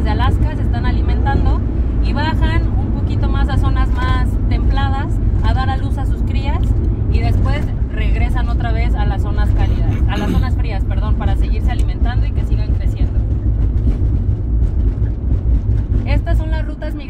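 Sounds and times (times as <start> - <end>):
woman speaking: 0.0 - 13.2, 16.1 - 17.0
vehicle rumbling: 0.0 - 17.0.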